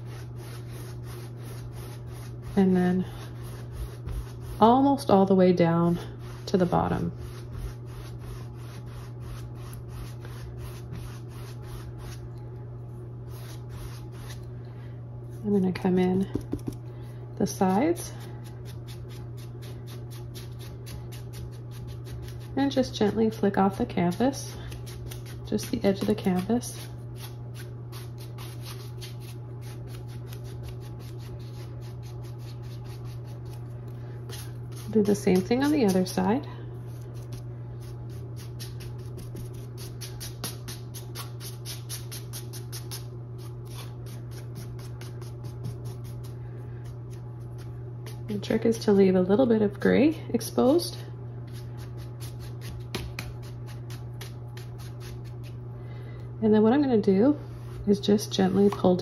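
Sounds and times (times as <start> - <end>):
brush scratching on canvas: 0.0 - 4.8, 6.2 - 12.2, 13.3 - 14.4
brush scrubbing paint on canvas: 0.0 - 5.1, 5.8 - 12.2, 13.3 - 14.5, 34.3 - 46.4
steady low hum: 0.0 - 59.0.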